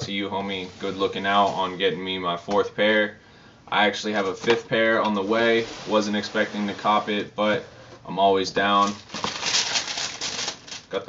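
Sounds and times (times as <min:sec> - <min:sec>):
wrapping paper crinkling: 0:08.6 - 0:11.0.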